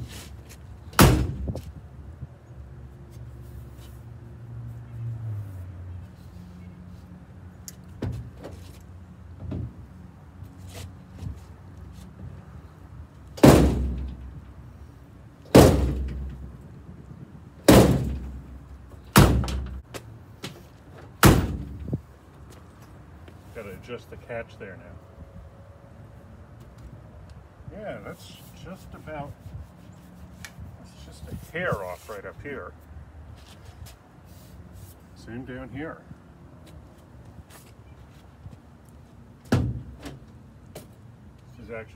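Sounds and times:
rubber mallet hitting steel door: 0.9 - 1.6, 13.4 - 14.2, 15.5 - 16.4, 17.7 - 18.4, 19.1 - 19.8, 21.2 - 21.8, 39.5 - 40.2.

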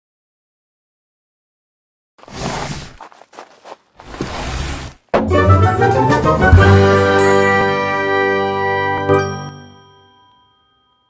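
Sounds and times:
chiming jingle: 7.1 - 11.0.

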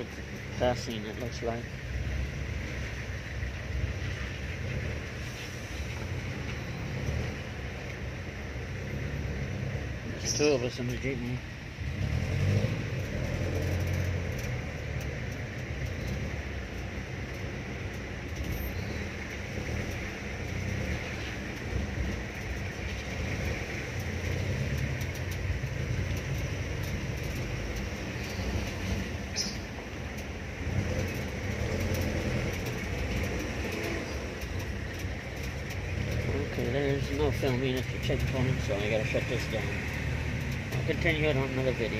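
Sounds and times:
vehicle engine rumble: 0.0 - 41.9
wind and tyre hiss: 0.0 - 41.9.

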